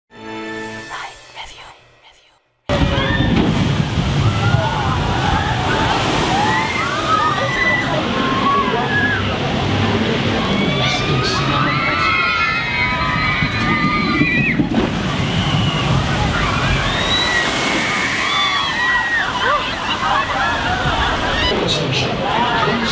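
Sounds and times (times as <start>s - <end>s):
people's voices and shouts: 2.7s - 22.9s
water rushing and sloshing: 2.7s - 22.9s.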